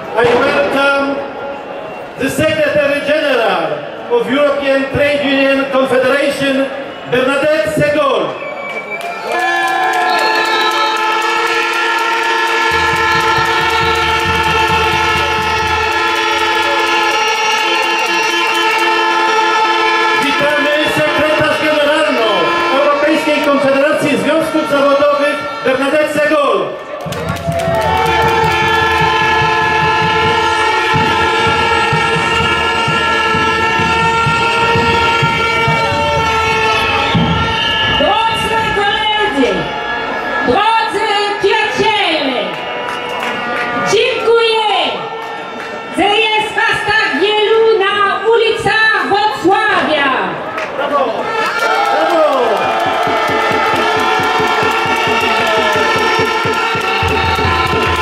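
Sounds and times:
crowd noise: 0.0 - 58.0
air horns: 8.8 - 48.4, 51.2 - 58.0
short horn toots: 10.1 - 26.2, 28.0 - 38.8, 53.4 - 58.0
clapping or rattling clicks: 51.9 - 58.0.

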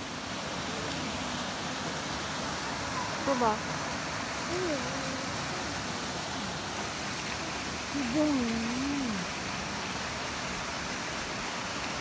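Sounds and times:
stream rushing over rocks: 0.0 - 12.0.

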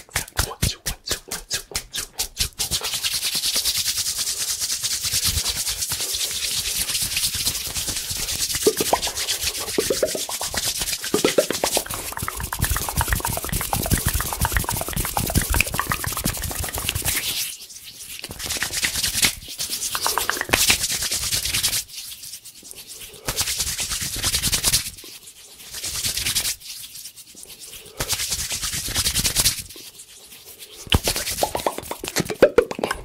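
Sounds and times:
hands rubbing at microphone: 0.0 - 33.0
rising mouth sounds: 8.6 - 17.4, 19.9 - 20.7.

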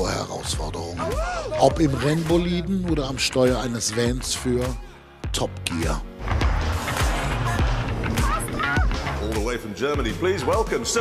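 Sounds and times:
dense background music: 0.0 - 11.0.

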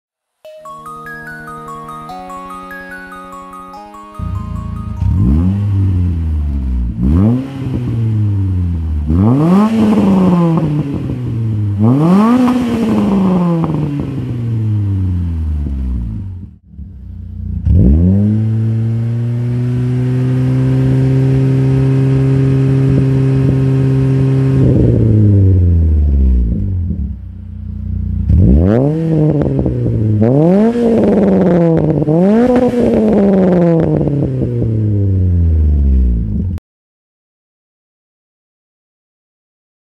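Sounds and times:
car engine revving: 5.2 - 27.2, 27.8 - 36.4.

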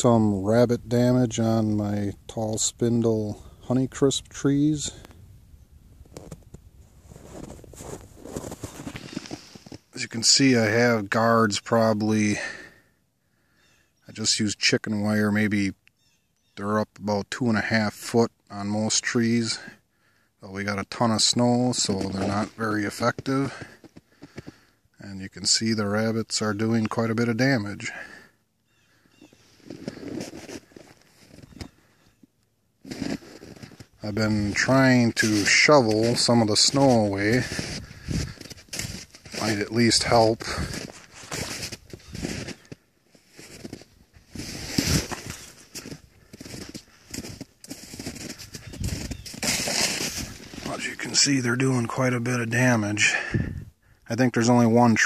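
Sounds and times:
footsteps crunching in snow: 6.0 - 10.1, 21.3 - 24.6, 29.2 - 32.0, 32.8 - 51.8.

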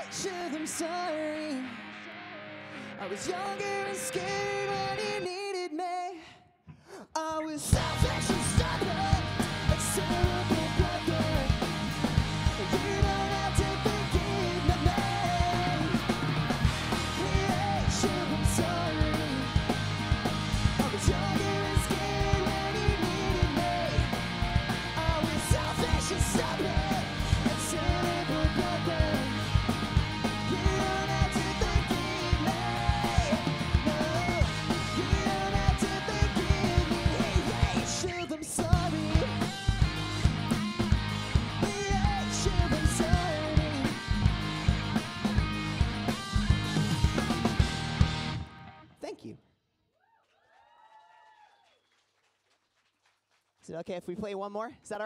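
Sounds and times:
electric guitars: 0.0 - 5.5, 7.7 - 49.0
lead vocal singing: 0.0 - 6.4, 7.0 - 40.2, 41.0 - 44.5
backing vocal: 2.7 - 6.4, 7.0 - 40.2
drum kit with cymbals: 7.7 - 48.4
electric bass: 7.7 - 48.9.

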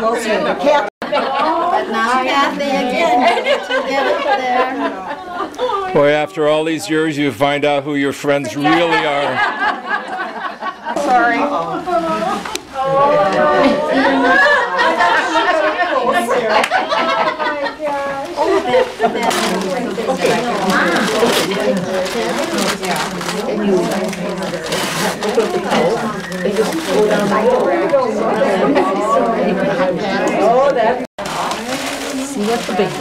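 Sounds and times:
women chattering: 0.0 - 6.0, 10.8 - 33.0
women laughing and talking: 0.0 - 6.0, 8.4 - 30.6, 31.5 - 33.0.

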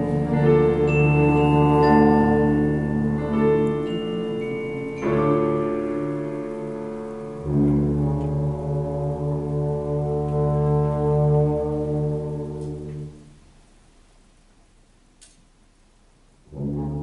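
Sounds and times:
wind band playing held chords: 0.0 - 13.4.

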